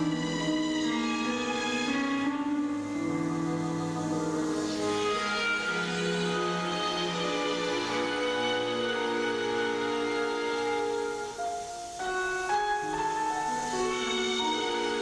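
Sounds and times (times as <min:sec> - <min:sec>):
orchestral piano concerto: 0:00.0 - 0:15.0.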